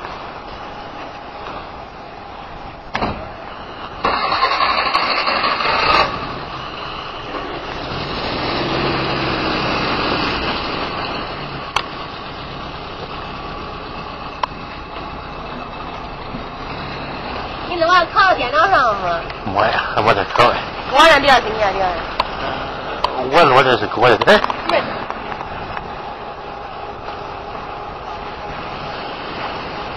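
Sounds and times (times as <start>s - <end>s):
truck engine running: 0.0s - 29.9s.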